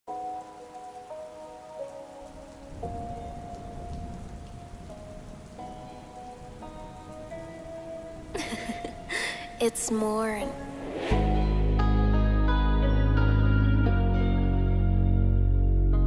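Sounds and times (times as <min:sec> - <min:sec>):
rain-like noise texture: 0:00.1 - 0:12.2
sustained minor chords: 0:09.8 - 0:16.0.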